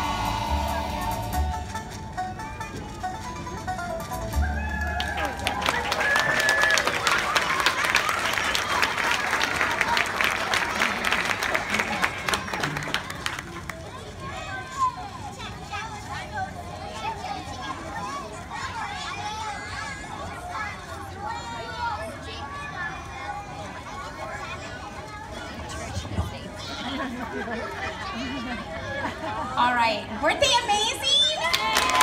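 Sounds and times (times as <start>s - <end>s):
crowd chatter: 0.0s - 32.0s
people cheering: 4.3s - 15.0s, 31.3s - 32.0s
audience applause: 4.6s - 13.9s, 31.4s - 32.0s.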